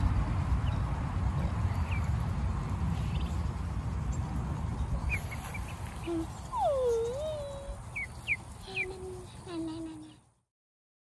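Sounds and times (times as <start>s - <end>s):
ducklings peeping: 2.9s - 3.4s, 4.8s - 9.6s.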